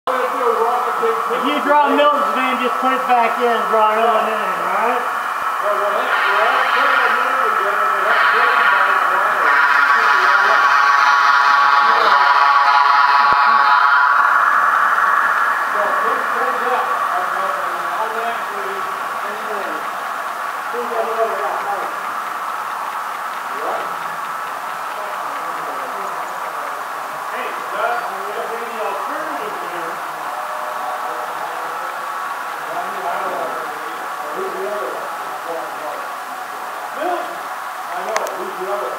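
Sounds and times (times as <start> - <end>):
model train speaker tone: 0.1 - 37.4
background voices: 4.2 - 22.2.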